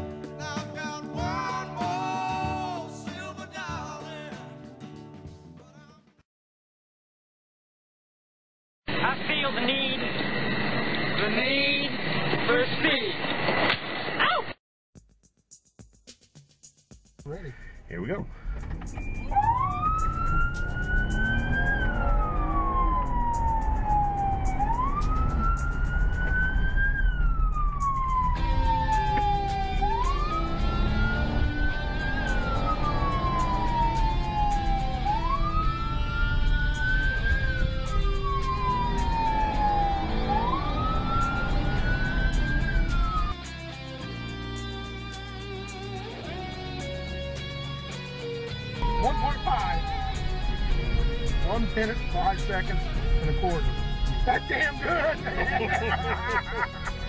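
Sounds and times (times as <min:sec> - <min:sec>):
music playing: 0:00.0 - 0:06.0, 0:15.0 - 0:57.0
car engine and road noise: 0:17.8 - 0:57.0
police siren wailing: 0:18.9 - 0:43.4, 0:48.8 - 0:57.0.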